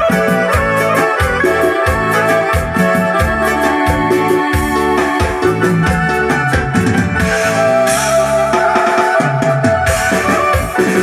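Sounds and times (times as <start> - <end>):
bass: 0.0 - 11.0
keyboard with organ sound: 0.0 - 11.0.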